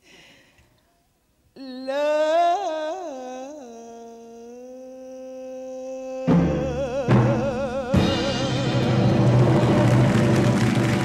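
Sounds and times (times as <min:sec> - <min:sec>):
woman singing a long note: 0:01.6 - 0:08.9.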